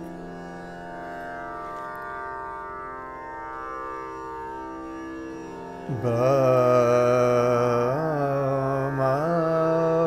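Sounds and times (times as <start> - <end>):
tanpura drone: 0.0 - 10.0.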